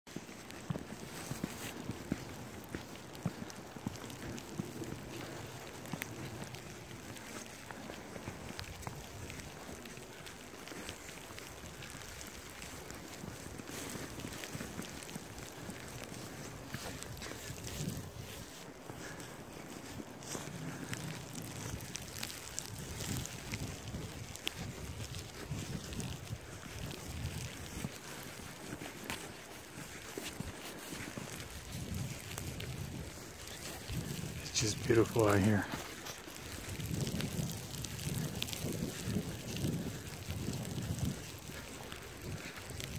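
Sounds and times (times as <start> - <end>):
soft clicks and crunches: 0.1 - 42.9
wind buffeting microphone: 0.5 - 42.9.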